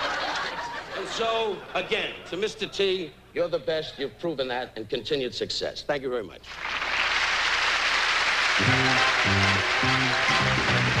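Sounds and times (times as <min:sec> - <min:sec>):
audience applause: 0:06.5 - 0:11.0
band playing a tune: 0:08.6 - 0:11.0.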